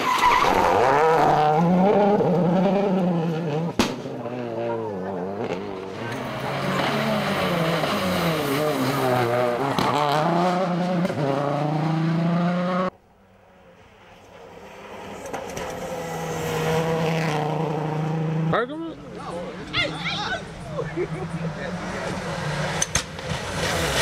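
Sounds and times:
rally car engine revving: 0.0 - 12.9, 14.3 - 19.8, 20.4 - 24.0
approaching rally car engine: 0.6 - 24.0.

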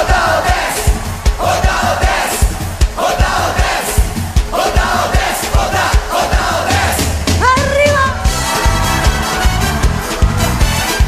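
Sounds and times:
crowd shouting along: 0.0 - 11.0
driving drum beat: 0.0 - 11.0
live dance music: 0.0 - 11.0.

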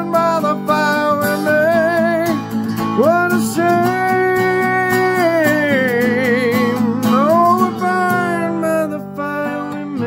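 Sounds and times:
acoustic guitar chord: 0.0 - 10.0
man singing: 0.0 - 10.0.

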